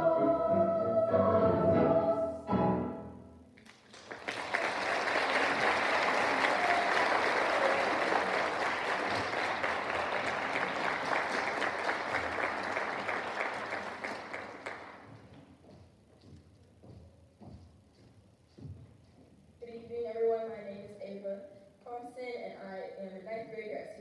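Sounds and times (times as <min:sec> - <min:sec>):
audience applauding: 0:03.6 - 0:15.2.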